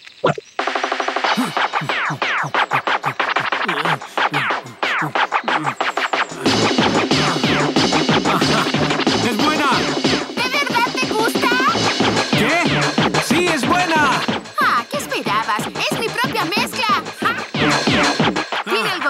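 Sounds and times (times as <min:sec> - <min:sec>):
electronic dance music: 0:00.6 - 0:19.0
heavy bass beat: 0:00.6 - 0:19.0
record scratching: 0:01.2 - 0:19.0.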